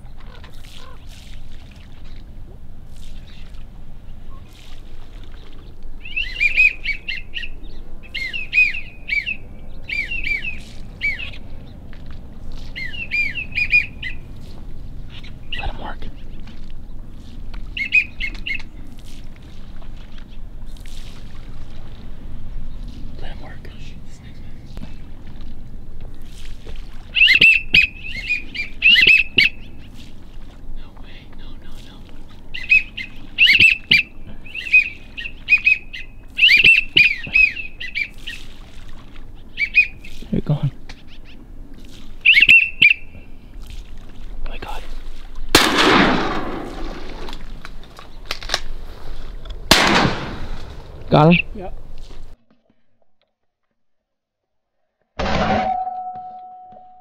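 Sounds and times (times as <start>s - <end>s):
high chirping whistled calls: 6.0s - 11.5s, 12.6s - 16.4s, 17.7s - 18.7s, 27.1s - 30.1s, 31.4s - 38.5s, 39.4s - 40.4s, 42.2s - 43.4s, 51.1s - 51.6s.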